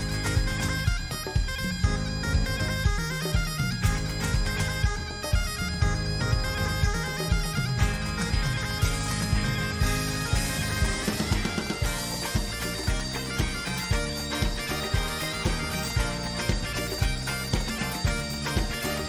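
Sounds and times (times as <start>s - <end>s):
bagpipes playing a melody: 0.0s - 19.0s
rock drum kit: 0.0s - 19.0s.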